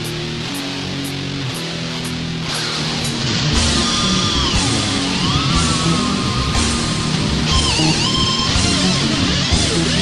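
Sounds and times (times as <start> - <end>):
electric guitar chords: 0.0 - 10.0
rising sweep: 3.3 - 9.3.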